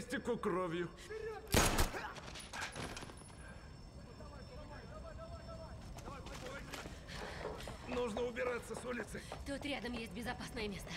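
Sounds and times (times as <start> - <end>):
gunshots: 1.5 - 2.1.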